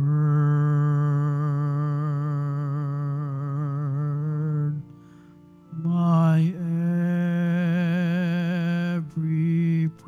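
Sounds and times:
person singing long note with vibrato: 5.7 - 10.0.

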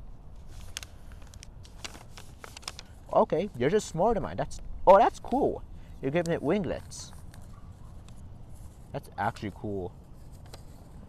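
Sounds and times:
paper folding crackles: 0.3 - 11.0.

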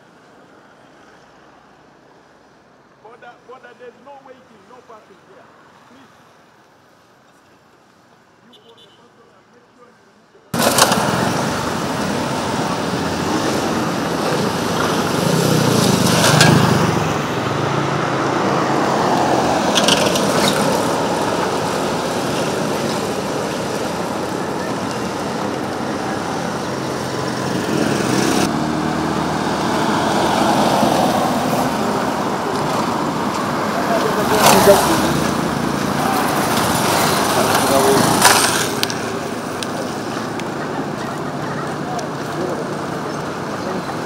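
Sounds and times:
cars driving by: 10.5 - 44.0
motorcycles driving by: 10.6 - 44.0.

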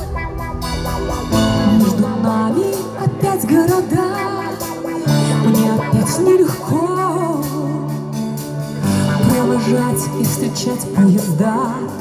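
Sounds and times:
sustained low chords: 0.0 - 3.0
live pop band instrumental: 0.0 - 12.0.

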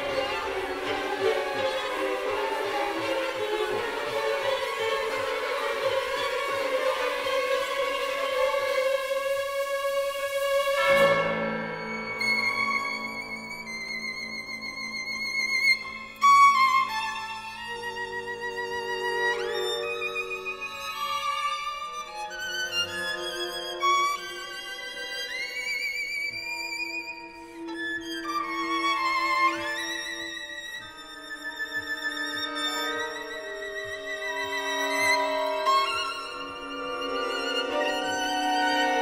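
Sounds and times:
orchestral music: 0.0 - 39.0
violin notes with vibrato: 0.0 - 39.0.

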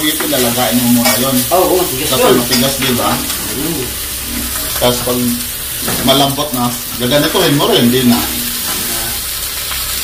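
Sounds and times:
pork skin sizzling in a wok: 0.0 - 10.0.

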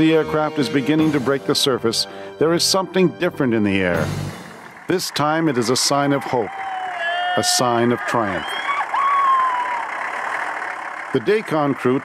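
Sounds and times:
engine running steadily: 0.0 - 6.7, 7.6 - 12.0.

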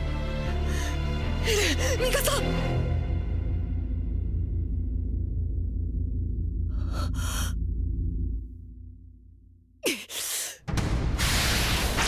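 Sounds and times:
low steady drone: 3.3 - 9.8.

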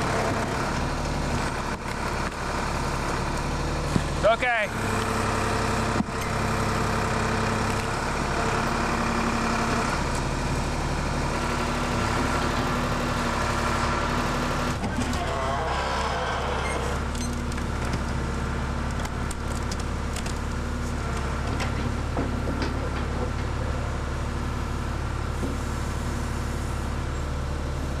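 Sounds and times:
backhoe engine running: 0.0 - 28.0.

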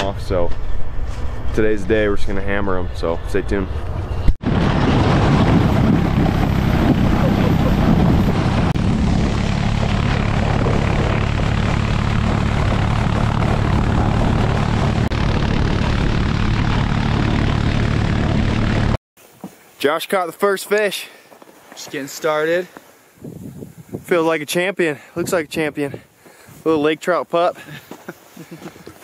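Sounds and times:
wind: 0.0 - 29.0
sled sliding over snow: 5.3 - 15.0
atv engine running: 5.7 - 19.0.

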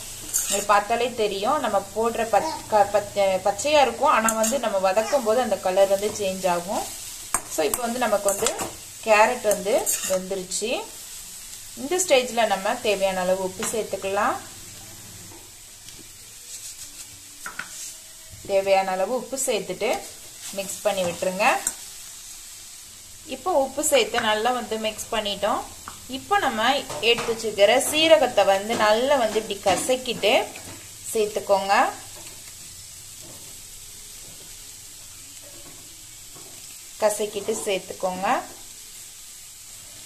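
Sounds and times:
food sizzling in a pan: 0.0 - 40.0
spatula scraping a pan: 0.1 - 0.9, 4.2 - 10.4, 35.4 - 37.8.

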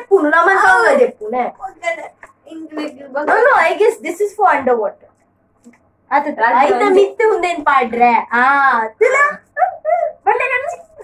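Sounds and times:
woman murmuring: 9.3 - 11.0
women laughing: 9.4 - 10.4.

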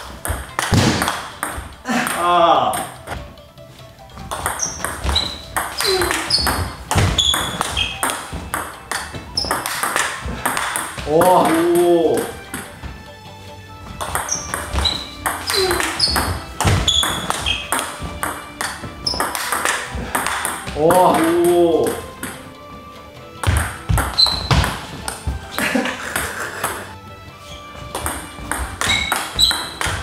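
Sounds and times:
table tennis ball hits: 0.0 - 3.2, 4.2 - 12.9, 13.9 - 22.5, 23.4 - 26.9, 27.9 - 30.0
person shouting: 1.9 - 2.8.

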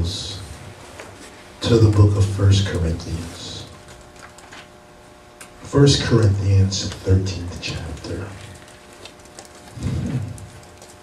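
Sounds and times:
low hum from a voice: 0.0 - 11.0
faint crackles: 6.2 - 11.0.

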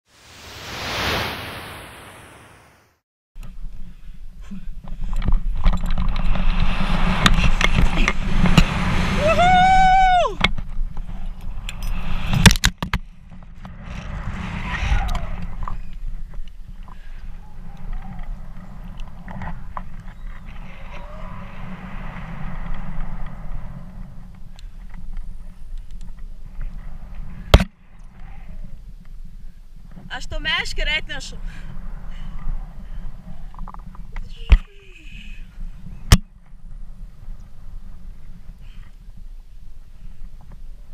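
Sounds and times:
whoosh: 0.1 - 3.0, 6.1 - 10.5, 13.4 - 16.2, 17.3 - 25.3
wind buffeting microphone: 4.7 - 40.9
person crying out: 9.2 - 10.4.

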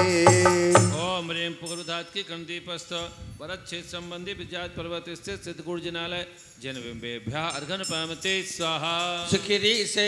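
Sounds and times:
devotional singing: 0.0 - 2.0.

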